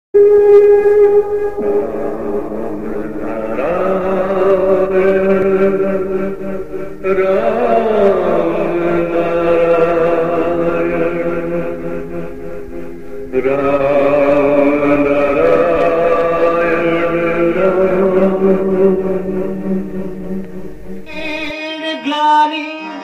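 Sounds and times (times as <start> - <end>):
devotional chanting: 0.2 - 23.0.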